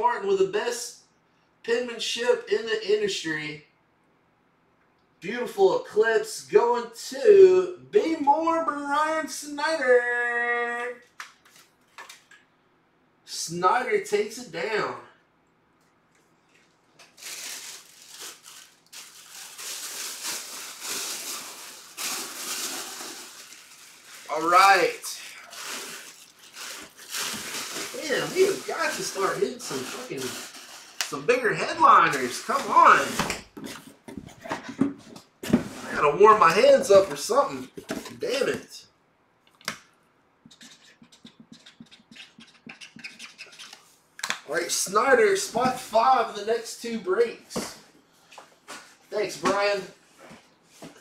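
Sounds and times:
plastic bag crinkling: 16.5s - 31.2s
hands rubbing together: 40.5s - 43.9s.

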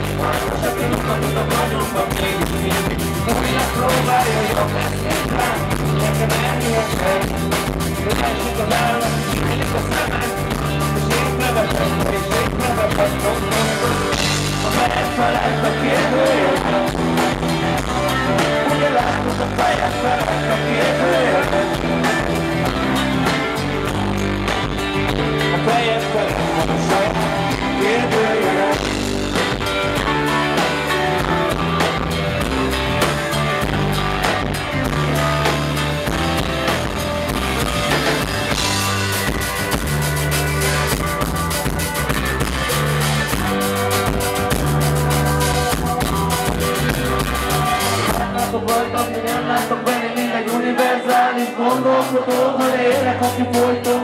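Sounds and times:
live rock band playing: 0.0s - 54.0s.

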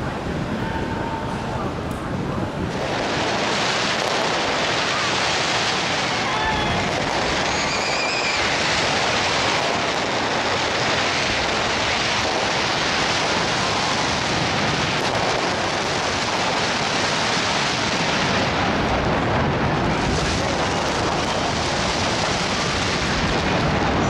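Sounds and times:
fireworks bursts and crackle: 1.9s - 24.0s
firework whistle: 2.8s - 18.6s.

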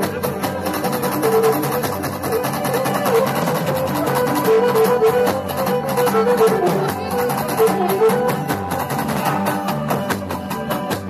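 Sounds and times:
live folk dance music: 0.0s - 11.0s.

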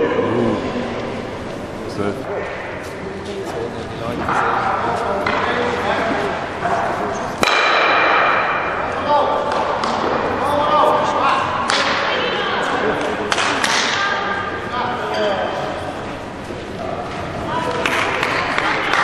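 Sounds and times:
voices in a large hall: 0.0s - 19.0s.

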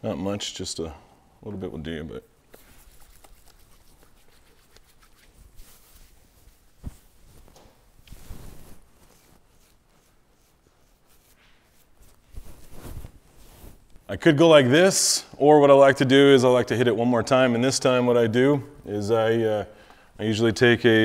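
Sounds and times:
hands rustling in beard: 2.5s - 14.1s.

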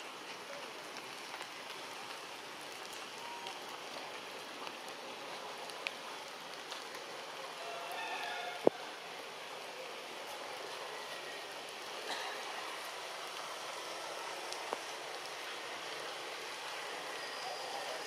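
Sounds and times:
rain on foliage: 0.0s - 18.0s.

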